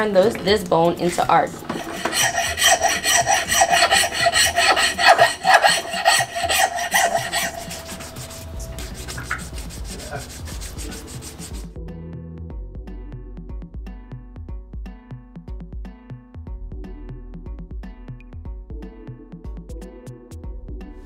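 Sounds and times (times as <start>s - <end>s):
file rasping on bone: 1.7s - 11.7s
music with a beat: 12.8s - 21.0s.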